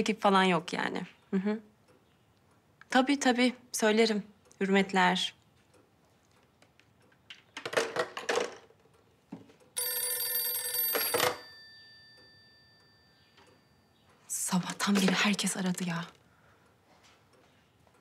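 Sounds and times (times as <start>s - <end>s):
telephone bell ringing: 9.8s - 14.0s.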